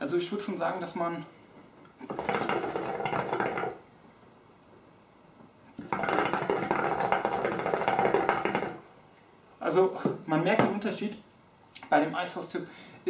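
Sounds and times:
hookah water bubbling: 0:02.0 - 0:03.8, 0:05.8 - 0:08.9.

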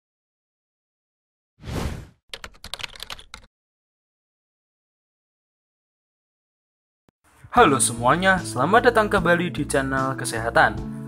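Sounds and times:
keyboard typing clicks: 0:02.3 - 0:03.5.

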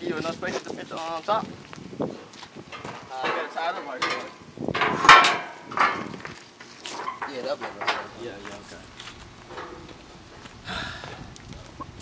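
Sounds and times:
sharp metal clanks: 0:02.7 - 0:06.2.

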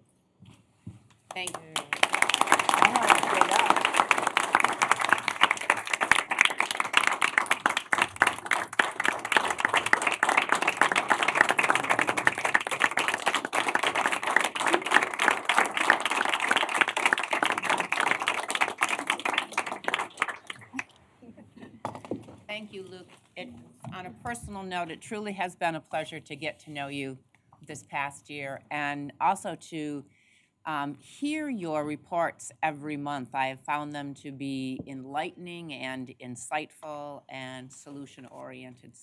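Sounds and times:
crowd applause: 0:01.7 - 0:20.8.

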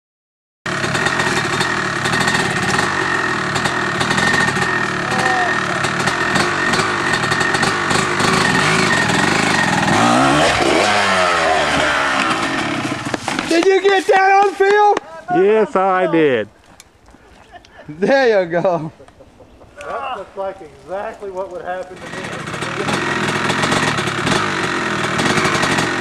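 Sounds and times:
dirt bike revving: 0:00.7 - 0:15.5, 0:20.9 - 0:26.0
dirt bike engines running: 0:00.7 - 0:26.0.

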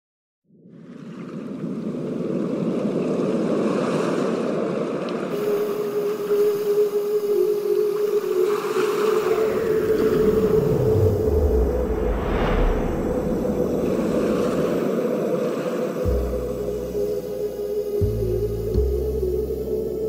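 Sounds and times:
surf-like wash of noise: 0:03.0 - 0:18.0
steady held tone: 0:05.4 - 0:20.0
falling sweep into deep rumble: 0:09.2 - 0:15.2.

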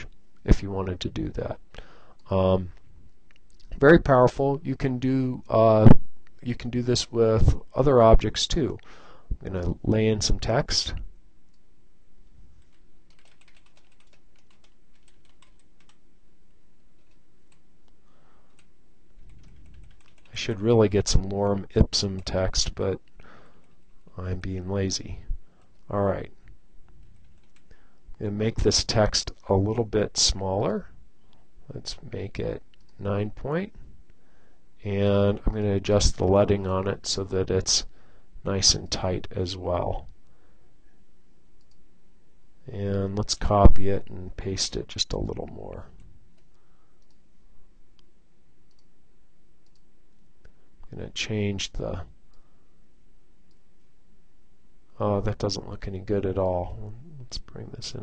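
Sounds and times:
low steady background hiss: 0:00.0 - 0:58.0
keyboard typing: 0:12.6 - 0:16.0, 0:17.0 - 0:17.6, 0:18.5 - 0:20.4, 0:26.9 - 0:27.8
faint computer mouse clicks: 0:46.4 - 0:47.2, 0:48.7 - 0:48.9, 0:49.6 - 0:49.8.

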